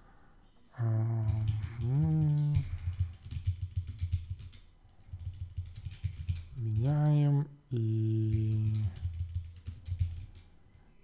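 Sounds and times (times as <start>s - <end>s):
man humming: 0.7s - 3.1s, 6.6s - 9.1s
keyboard typing: 0.9s - 7.1s, 7.8s - 10.5s.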